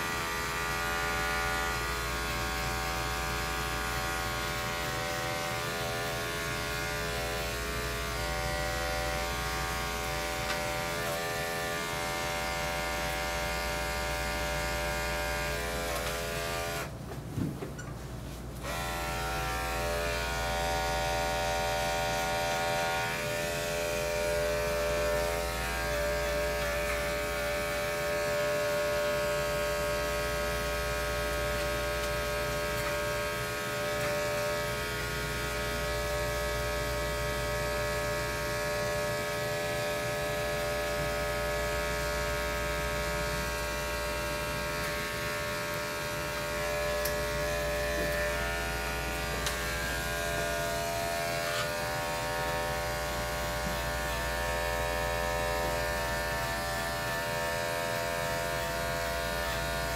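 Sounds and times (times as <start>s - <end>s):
electric clippers buzzing: 0.0s - 17.0s, 18.6s - 59.9s.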